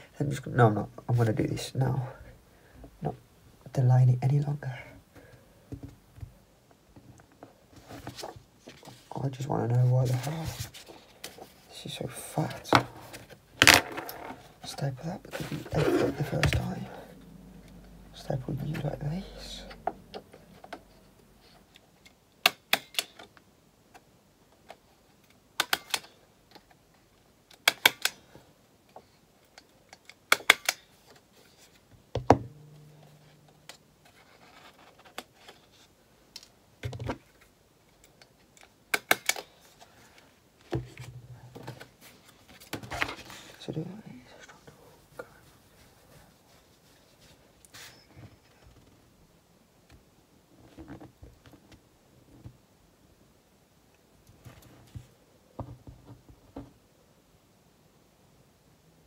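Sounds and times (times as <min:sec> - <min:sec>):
stapler clacking shut: 0:30.3 - 0:30.8, 0:38.9 - 0:39.5.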